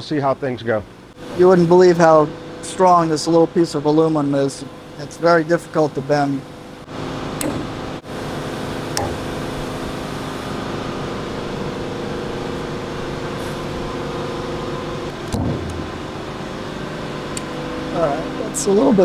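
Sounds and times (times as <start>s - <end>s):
mechanical hum: 0.0s - 19.0s
faint pitched drone: 1.2s - 19.0s
low thump: 15.3s - 16.0s.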